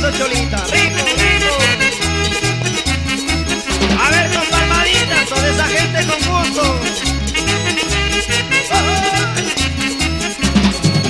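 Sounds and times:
instrumental dance music: 0.0s - 11.0s.

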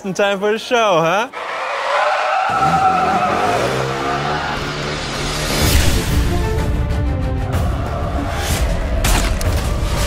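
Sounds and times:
motorcycle tyres screeching: 1.4s - 5.4s.

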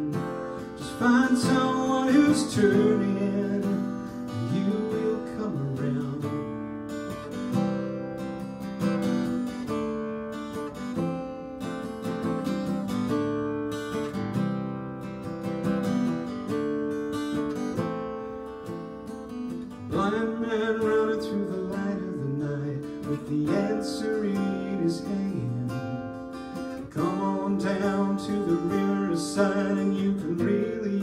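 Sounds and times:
acoustic guitar strumming chords: 0.0s - 31.0s.

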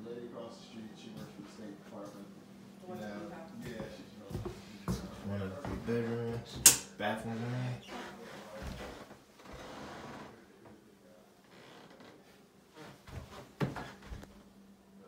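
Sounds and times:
man speaking: 0.0s - 2.4s, 3.0s - 8.8s
sharp click or knock: 6.6s - 6.9s.

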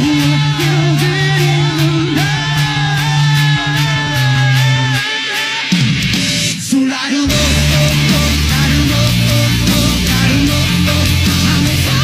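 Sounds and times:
bass guitar: 0.0s - 6.6s, 7.2s - 12.0s
distorted electric guitar: 0.0s - 12.0s
drums: 0.0s - 12.0s.

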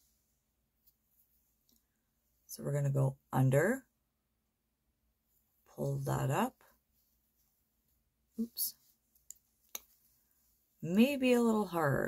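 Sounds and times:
woman speaking: 2.5s - 3.9s, 5.7s - 6.7s, 8.4s - 8.8s, 10.8s - 12.0s.

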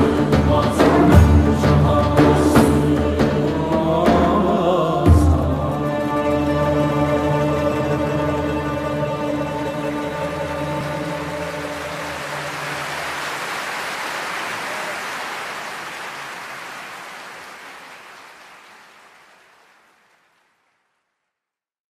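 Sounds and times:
audience applauding: 10.4s - 21.0s.

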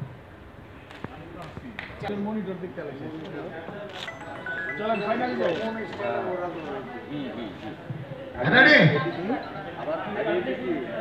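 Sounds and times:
faint murmur of voices: 0.7s - 11.0s.

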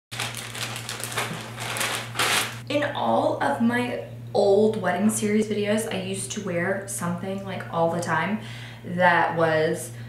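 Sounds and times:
plastic bag crinkling: 0.1s - 2.6s.

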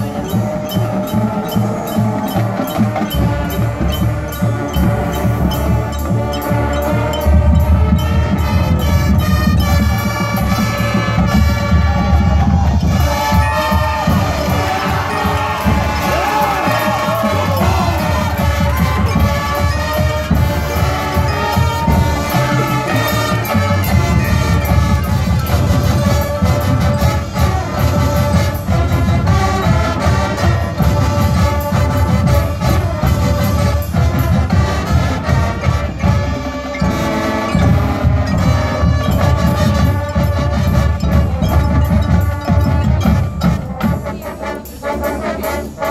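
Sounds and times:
brass: 0.0s - 45.9s
drumline: 0.0s - 45.9s.

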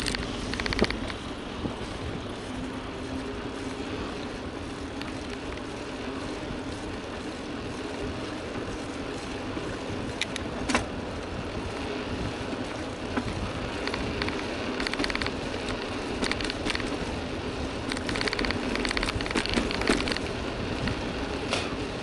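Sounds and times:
quick clicks: 0.0s - 1.2s, 13.8s - 17.0s, 17.8s - 20.3s
bike tyres on asphalt: 0.0s - 22.0s.

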